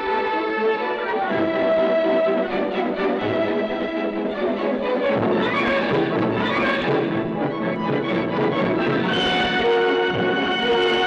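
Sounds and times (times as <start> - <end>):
orchestral music with strings and brass: 0.0 - 11.0.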